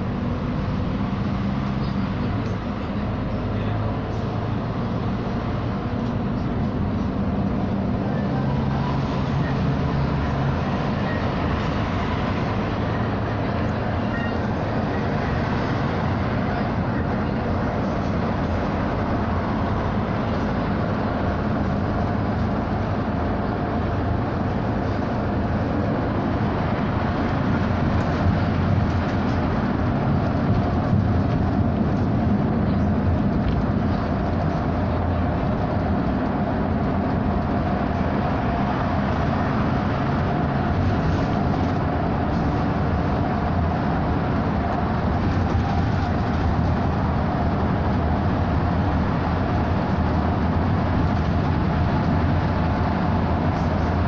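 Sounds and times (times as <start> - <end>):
bus interior engine and road drone: 0.0 - 54.0.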